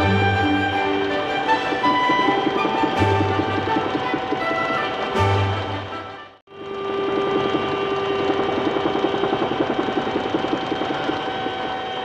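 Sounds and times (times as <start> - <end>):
helicopter engine whine: 0.0 - 12.0
helicopter rotor chopping: 0.0 - 12.0.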